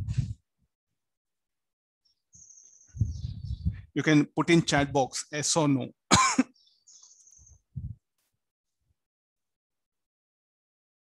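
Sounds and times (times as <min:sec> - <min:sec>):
man coughing: 0:06.1 - 0:06.6.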